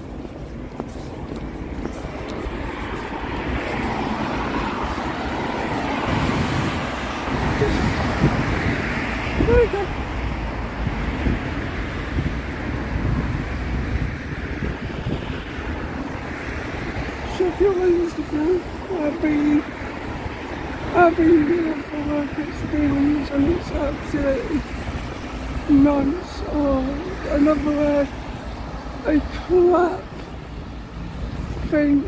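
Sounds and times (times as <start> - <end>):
traffic on a wet road: 0.0 - 32.0.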